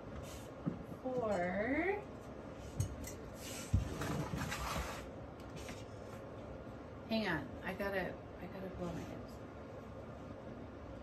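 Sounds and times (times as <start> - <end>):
rustling and handling noise: 2.1 - 6.6.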